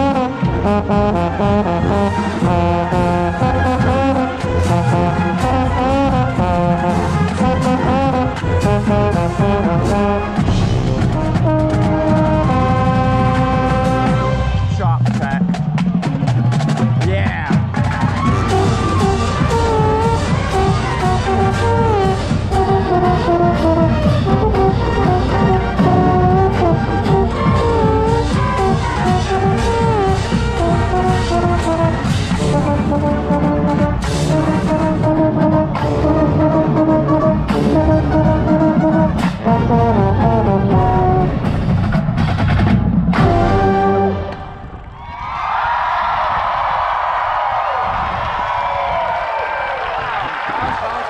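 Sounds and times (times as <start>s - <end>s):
trombone: 0.0s - 14.9s, 18.0s - 44.7s
marching band brass playing: 0.0s - 44.8s
drums: 0.0s - 51.0s.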